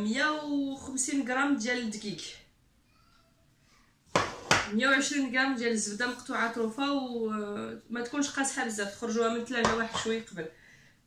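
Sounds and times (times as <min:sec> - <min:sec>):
woman talking: 0:00.0 - 0:02.5, 0:04.7 - 0:10.6.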